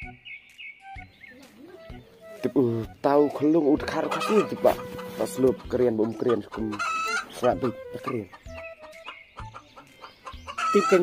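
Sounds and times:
chickens clucking: 1.3s - 11.0s.

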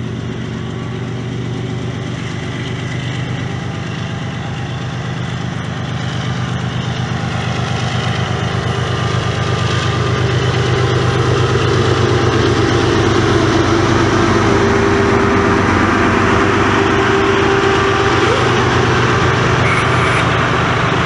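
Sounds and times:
locomotive engines droning: 0.0s - 21.0s.

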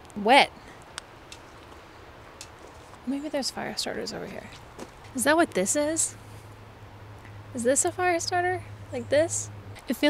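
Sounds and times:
footsteps rustling dry leaves: 1.4s - 3.1s.

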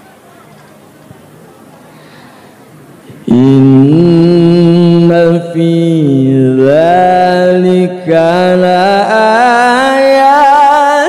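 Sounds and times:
man chanting into a microphone: 3.2s - 11.0s.

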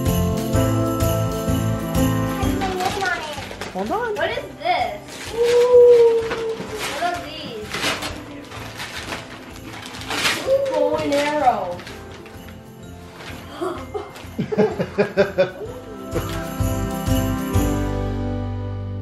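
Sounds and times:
jingle-bell christmas music: 0.0s - 19.0s
wrapping paper tearing: 2.6s - 14.4s.

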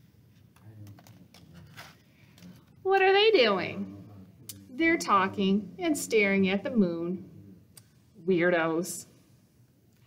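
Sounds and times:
paper page turning: 0.8s - 2.7s
woman speaking in character voice: 2.9s - 3.9s, 4.7s - 7.2s, 8.2s - 9.1s.

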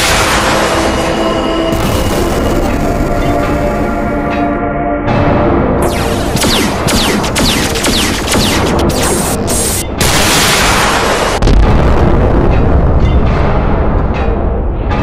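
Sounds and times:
sharp blasts: 0.0s - 3.6s, 5.8s - 12.6s
deep boom: 0.0s - 3.8s, 5.8s - 15.0s
background music: 0.0s - 15.0s.

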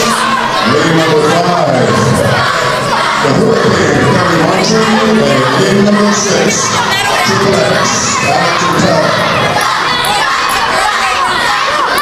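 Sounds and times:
crowd talking and shouting: 0.0s - 12.0s.

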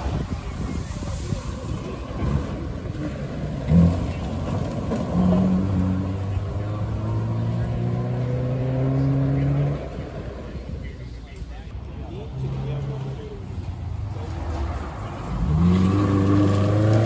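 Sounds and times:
rally car engine at full throttle: 0.0s - 17.0s.

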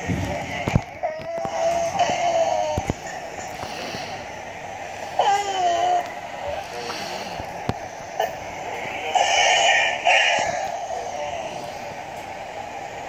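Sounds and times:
high synthetic vocal sounds: 8.2s - 11.9s.

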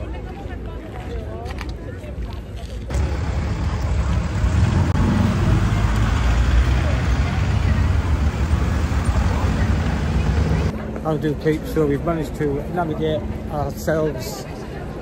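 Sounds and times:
low rumble of traffic or wind: 0.0s - 15.0s
faint voices: 6.6s - 15.0s.

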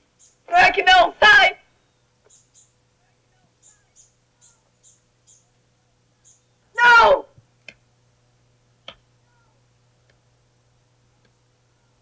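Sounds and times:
low steady hum: 0.0s - 12.0s
woman screaming: 6.8s - 7.3s.

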